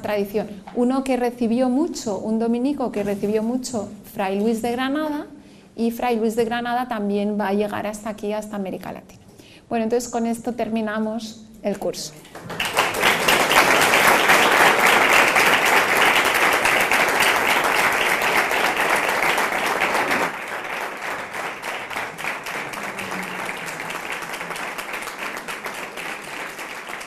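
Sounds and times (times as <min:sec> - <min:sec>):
audience applauding: 0:12.4 - 0:27.0.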